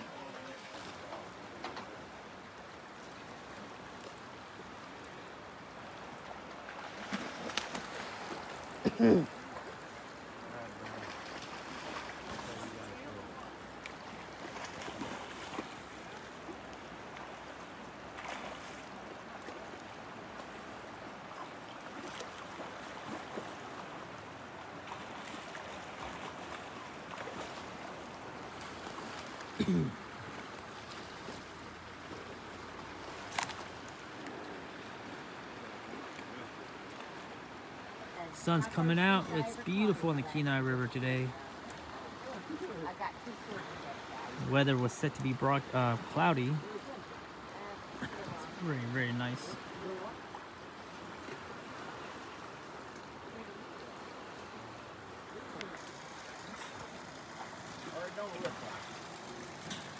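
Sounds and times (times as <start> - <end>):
river current rushing: 0.0 - 59.9
person clearing throat: 8.8 - 9.3, 29.6 - 30.0.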